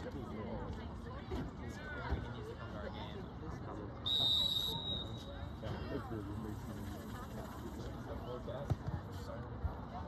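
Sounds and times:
faint spectators talking: 0:00.0 - 0:10.0.

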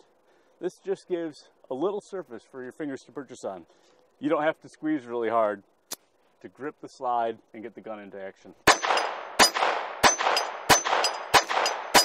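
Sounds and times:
pistol shots with echo: 0:08.6 - 0:12.0.

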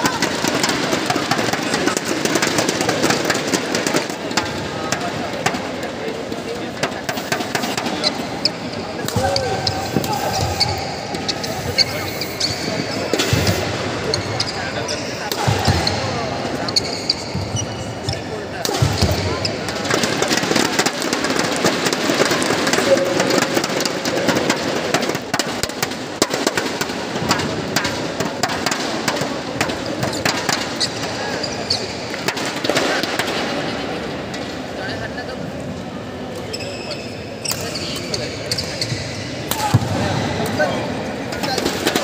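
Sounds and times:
voices in a hall: 0:00.0 - 0:42.0.

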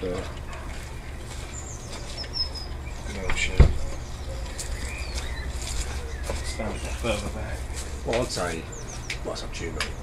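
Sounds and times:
small bird chirping: 0:01.0 - 0:10.0.

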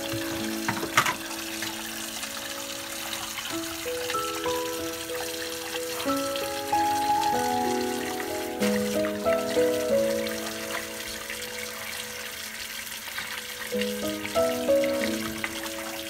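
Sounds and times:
background music: 0:00.0 - 0:16.0
tap water running into bowl: 0:00.0 - 0:16.0.

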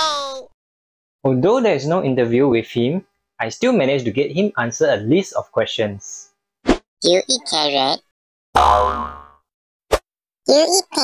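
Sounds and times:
cartoon boing: 0:08.6 - 0:09.4.

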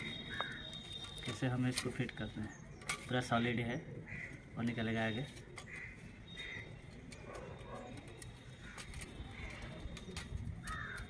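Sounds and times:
crow cawing: 0:00.1 - 0:00.8, 0:04.0 - 0:04.5, 0:05.6 - 0:06.8, 0:10.6 - 0:11.0.

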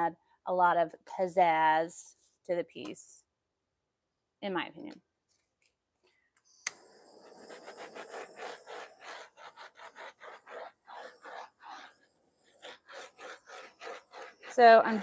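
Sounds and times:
torch ignition click: 0:06.6 - 0:06.8
torch flame hissing in pulses: 0:06.7 - 0:15.0.

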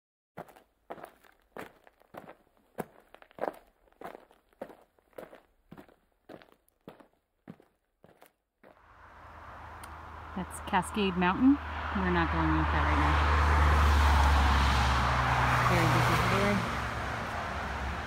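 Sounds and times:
footsteps walking: 0:00.4 - 0:08.8
rushing outdoor noise with rumble: 0:08.8 - 0:18.0.

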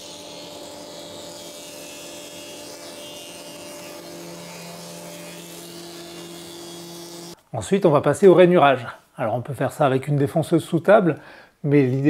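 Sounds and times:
planer running with hum: 0:00.0 - 0:07.4
wooden strips fed through planer: 0:00.0 - 0:07.4.

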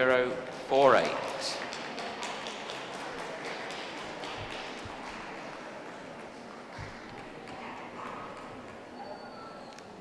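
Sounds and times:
crowd murmuring in a hall: 0:00.0 - 0:10.0.

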